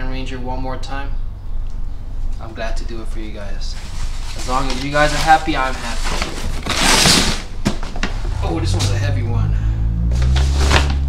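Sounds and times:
cardboard box rustling scrape: 3.8s - 8.4s, 10.2s - 11.0s.

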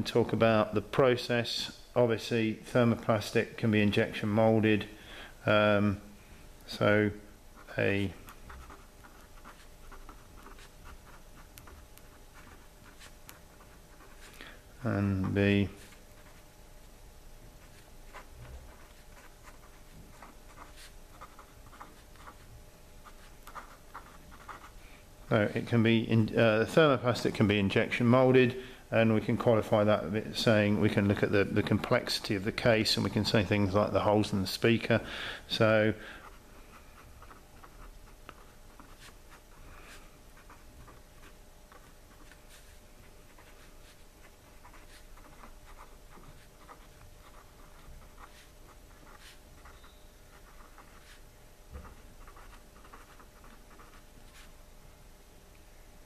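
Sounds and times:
pen scratching on paper: 7.6s - 16.5s, 17.6s - 24.8s, 36.2s - 54.5s.

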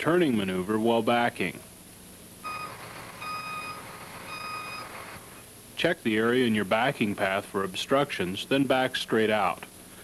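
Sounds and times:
truck backup alarm beeping: 2.4s - 5.4s.

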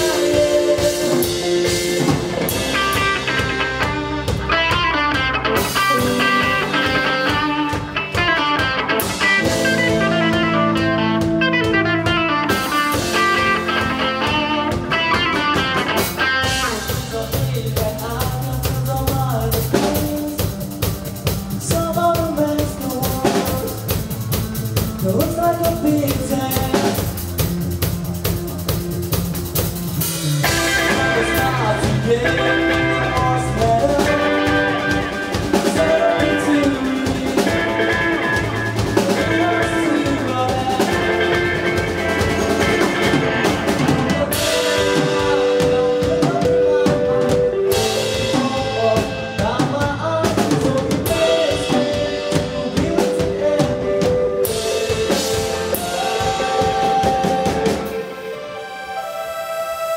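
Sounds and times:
rock band playing instrumental: 0.0s - 59.9s.

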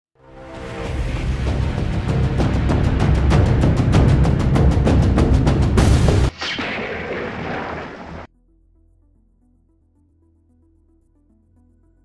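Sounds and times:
heavy boom-like hit: 5.8s - 8.3s.

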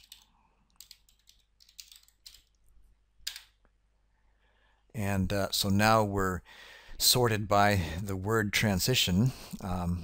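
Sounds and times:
keyboard typing: 0.0s - 2.6s, 3.2s - 3.6s.

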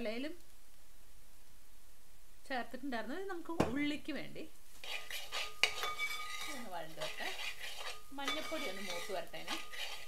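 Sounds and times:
spoon stirring onions in a pan: 4.8s - 10.0s
spoon clinking on pan: 5.3s - 7.2s, 7.8s - 10.0s.

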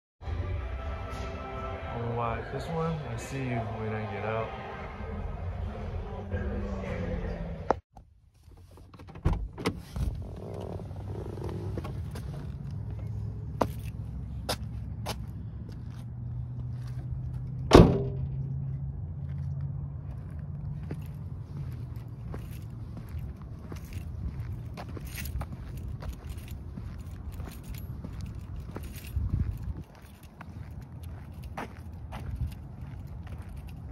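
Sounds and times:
footsteps on concrete: 11.6s - 17.6s, 19.2s - 33.9s
keys jingling: 20.8s - 33.9s.

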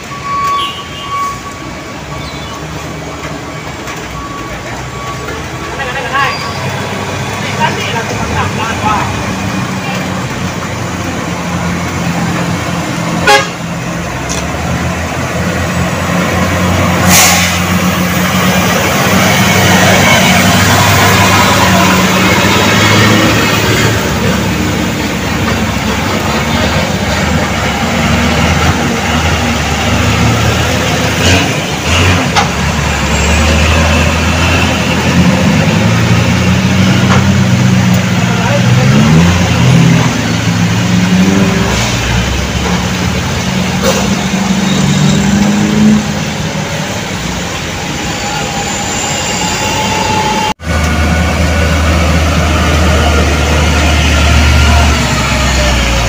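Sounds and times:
truck engines climbing under load: 0.0s - 56.0s
voices: 2.1s - 12.6s, 36.9s - 45.2s
horn toots: 13.2s - 13.7s.

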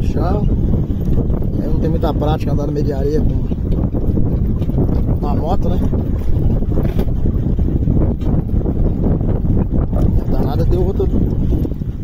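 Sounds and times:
motorcycle engine rumble: 0.0s - 12.0s
wind buffeting microphone: 0.0s - 12.0s.

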